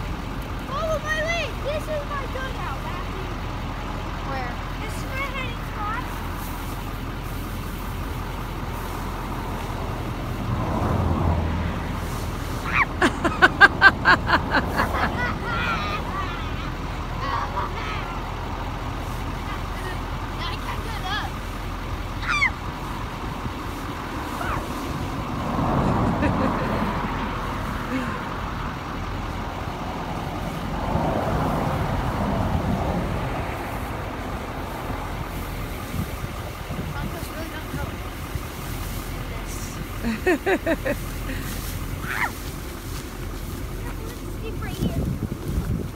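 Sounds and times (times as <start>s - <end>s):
vehicles passing by: 0.0s - 45.9s.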